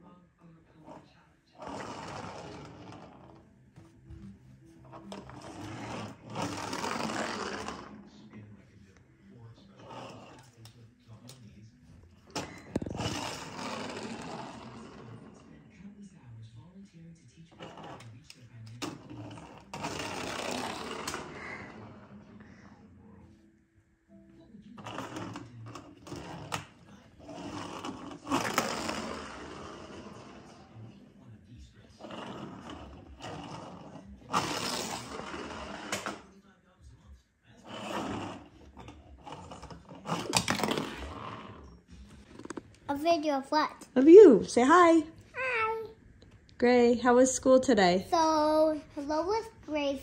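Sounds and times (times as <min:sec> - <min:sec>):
toy truck rolling on wooden floor: 0:00.8 - 0:03.5, 0:04.8 - 0:08.3, 0:09.7 - 0:11.4, 0:12.3 - 0:15.7, 0:17.5 - 0:22.2, 0:24.8 - 0:31.2, 0:31.8 - 0:36.3, 0:37.6 - 0:43.1
child speaking: 0:42.9 - 0:43.9, 0:45.3 - 0:46.0, 0:48.0 - 0:50.0.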